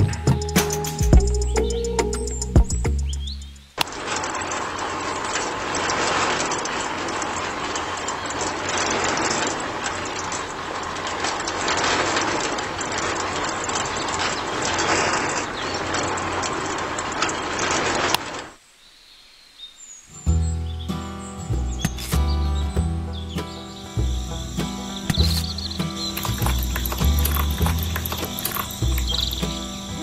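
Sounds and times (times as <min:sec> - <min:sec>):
music: 0:00.0 - 0:03.6, 0:20.2 - 0:30.0
small motor churning water: 0:03.9 - 0:18.1, 0:24.4 - 0:30.0.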